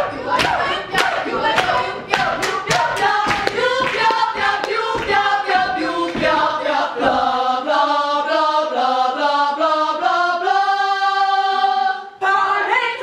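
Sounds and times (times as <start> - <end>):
female choir singing in harmony: 0.0 - 13.0.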